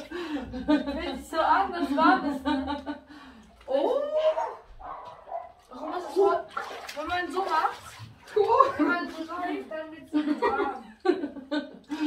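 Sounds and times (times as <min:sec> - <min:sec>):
water moving in pool: 0:00.0 - 0:01.2, 0:01.8 - 0:12.0.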